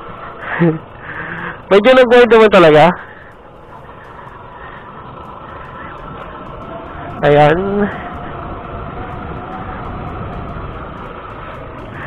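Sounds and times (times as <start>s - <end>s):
motorcycle engine: 0.0s - 12.0s
wind noise: 3.8s - 12.0s.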